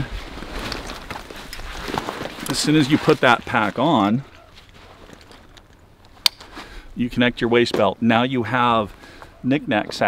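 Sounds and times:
buckle snapping shut: 0:05.5 - 0:06.5.

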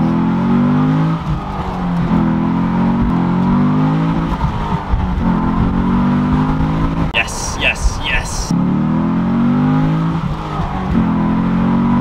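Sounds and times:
car engine droning under acceleration: 0:08.5 - 0:12.0.

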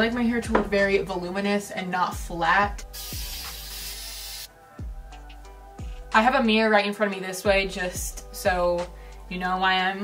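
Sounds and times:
aerosol spray hiss: 0:02.9 - 0:04.5.

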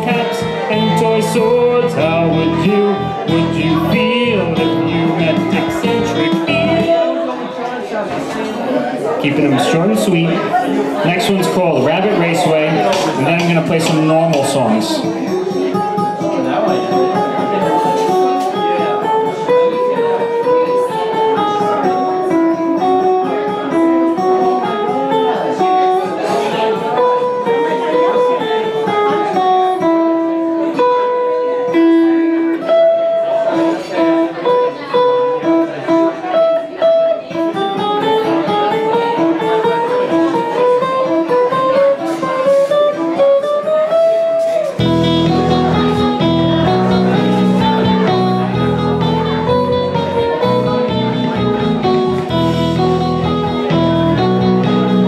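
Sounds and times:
electric guitar single-note melody: 0:00.0 - 0:55.0
fuller lower guitar sound: 0:00.0 - 0:55.0.

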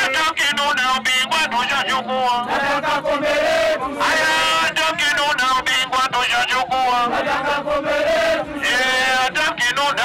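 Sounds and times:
crowd chanting in unison: 0:01.4 - 0:10.0.

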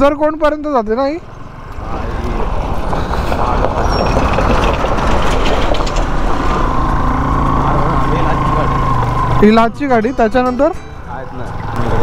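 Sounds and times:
bus engine: 0:01.2 - 0:12.0.

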